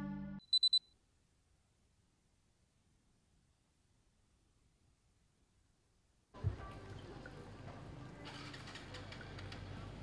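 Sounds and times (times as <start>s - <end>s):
high-pitched electronic beeps: 0.0s - 0.9s.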